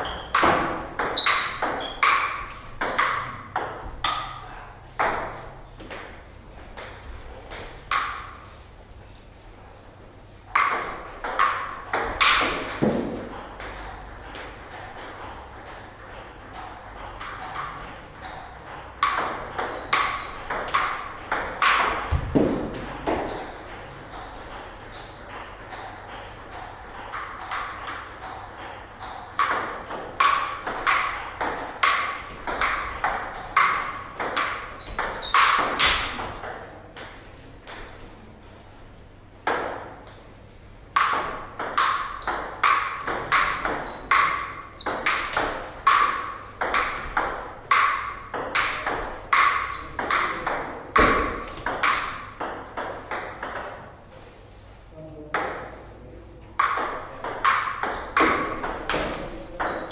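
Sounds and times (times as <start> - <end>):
table tennis ball clicking: 0.0 - 4.4, 10.6 - 12.9, 16.4 - 22.1, 22.8 - 37.9, 41.0 - 53.8, 56.6 - 59.9.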